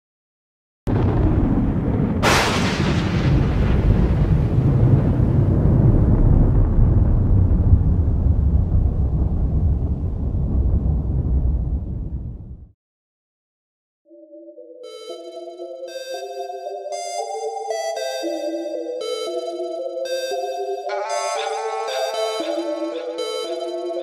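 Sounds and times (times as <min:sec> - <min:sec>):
sharp thunder crack: 0:00.9 - 0:12.7
thunder rumbling: 0:00.9 - 0:12.7.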